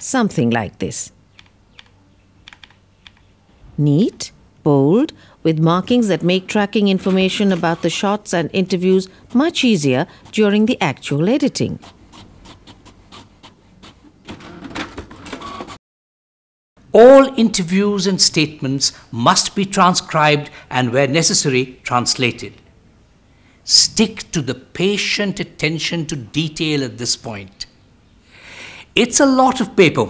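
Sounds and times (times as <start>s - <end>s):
keyboard typing clicks: 1.4s - 3.3s
printer clicking and whirring: 13.8s - 15.8s.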